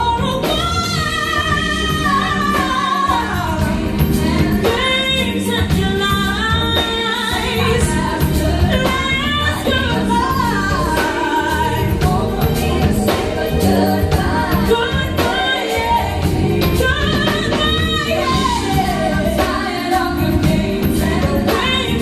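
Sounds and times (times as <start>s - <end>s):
band with keyboards and beat: 0.0s - 22.0s
woman singing: 0.0s - 22.0s.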